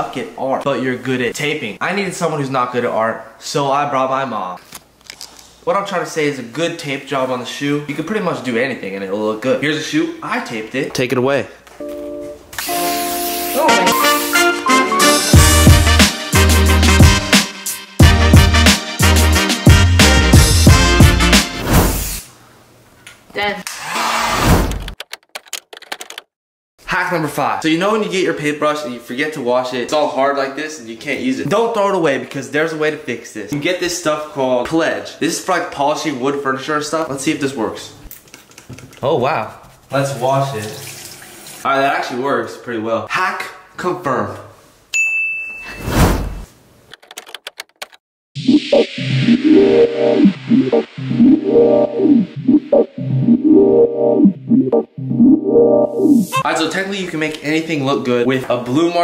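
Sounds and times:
electronic music with synth chords: 13.5 - 21.6, 48.4 - 56.4
typewriter key clicks: 24.8 - 26.3, 46.9 - 48.0
short high ding: 44.9 - 45.8
whoosh: 45.8 - 46.4
quick clicks: 46.9 - 48.0.

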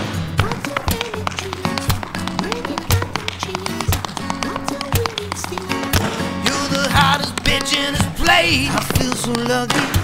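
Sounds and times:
acoustic music with heavy beat: 0.0 - 10.0
tap shoes on wooden floor: 0.4 - 10.0.

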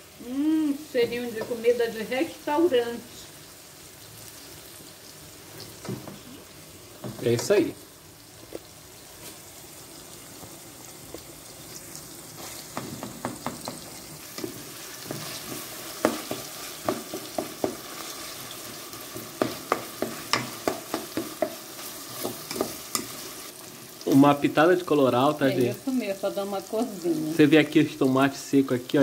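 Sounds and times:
vegetables sizzling in oil: 0.0 - 29.0
wooden spoon scraping a pot: 12.4 - 23.6.

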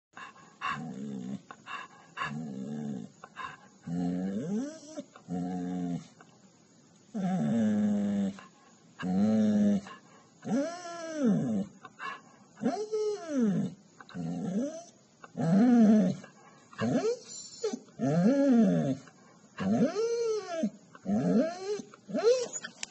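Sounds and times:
dog whining: 0.6 - 5.9, 9.0 - 19.0, 19.6 - 22.9.

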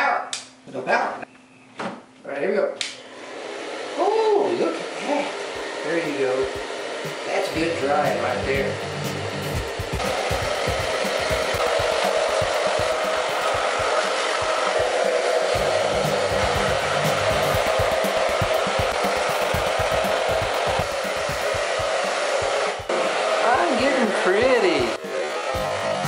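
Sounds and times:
hair dryer running: 2.8 - 26.0.

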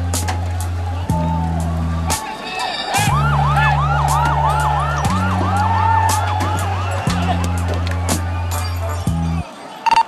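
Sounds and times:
synthesized music with bass: 0.0 - 9.5
warbling siren yelp: 1.0 - 9.4.

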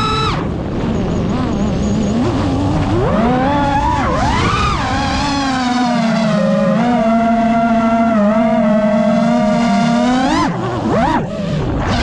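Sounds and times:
quadcopter motors whining: 0.0 - 12.0.

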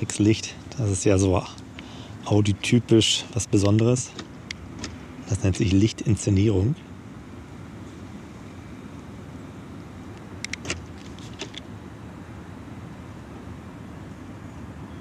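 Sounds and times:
quick clicks: 10.2 - 11.7.

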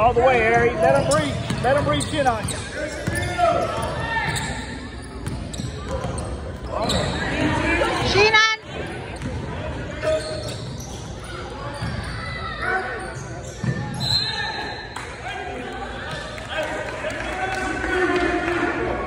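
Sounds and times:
players and spectators voices: 0.0 - 19.0.

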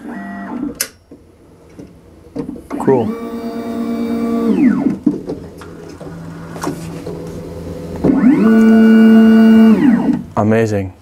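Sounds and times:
stepper motor whine: 2.1 - 10.4.

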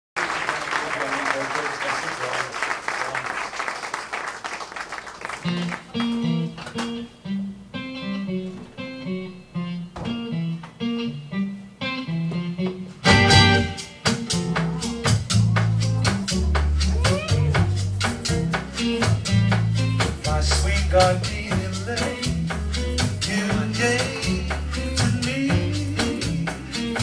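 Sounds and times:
audience applause: 0.2 - 6.2
acoustic guitar picking: 5.5 - 27.0.

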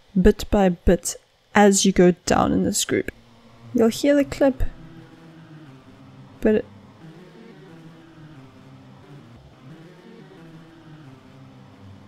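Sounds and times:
synth melody: 3.1 - 12.0.

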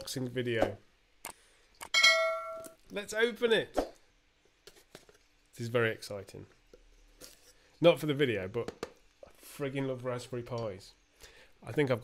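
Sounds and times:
bright metallic ding: 1.9 - 2.7.

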